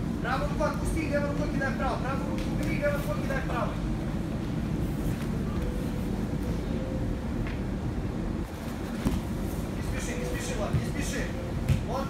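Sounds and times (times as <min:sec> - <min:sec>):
faint constant hum: 0:00.0 - 0:12.0
low room rumble: 0:00.0 - 0:12.0.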